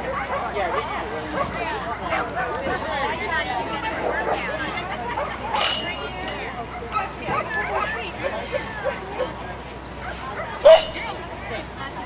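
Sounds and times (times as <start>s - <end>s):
faint background voices: 0.0s - 12.0s
dog barking: 0.2s - 2.5s, 10.0s - 11.0s.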